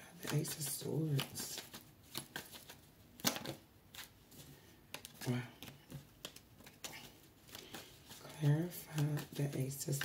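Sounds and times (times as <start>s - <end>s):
cards flicking and rustling: 0.2s - 10.0s.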